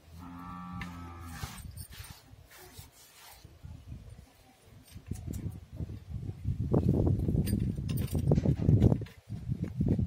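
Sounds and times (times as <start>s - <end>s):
cow mooing: 0.2s - 1.4s.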